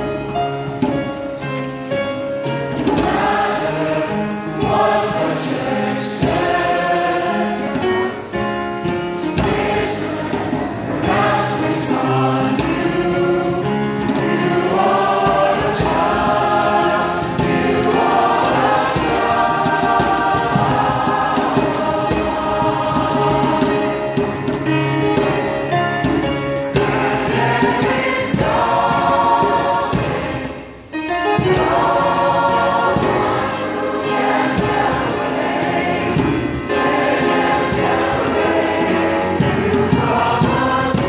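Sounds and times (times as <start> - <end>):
choir singing: 2.6 - 41.0.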